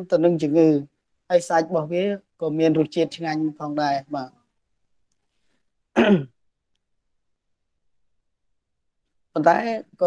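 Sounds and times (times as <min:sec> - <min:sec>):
person clearing throat: 0:06.0 - 0:06.4.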